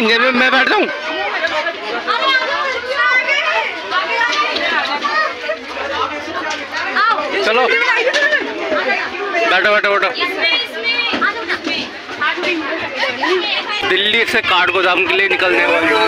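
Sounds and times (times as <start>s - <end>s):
people talking over one another: 0.0s - 16.0s
children's voices: 0.9s - 9.5s, 10.1s - 13.8s, 15.4s - 16.0s.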